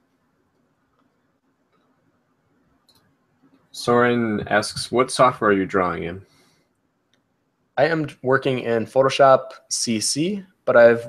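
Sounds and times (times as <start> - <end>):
faint steady hum: 0.0 - 11.0
soft clicks: 2.8 - 3.7, 6.7 - 7.3
person speaking: 3.7 - 6.3, 7.8 - 11.0.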